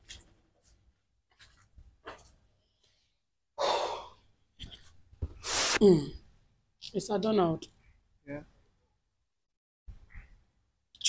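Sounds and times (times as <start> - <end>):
person sighing heavily: 3.6 - 4.2.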